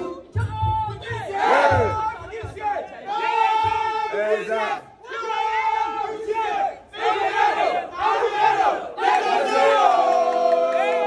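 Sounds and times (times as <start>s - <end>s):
crowd chanting in unison: 0.0s - 11.0s.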